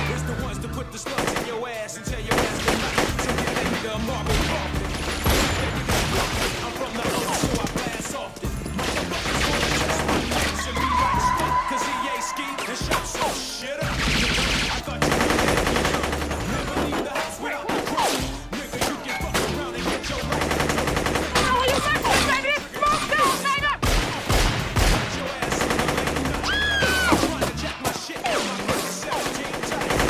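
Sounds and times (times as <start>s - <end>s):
background music: 0.0s - 30.0s
gunfire volleys: 2.3s - 10.7s, 13.1s - 30.0s
people shouting: 9.0s - 14.0s, 21.3s - 23.9s, 25.4s - 30.0s.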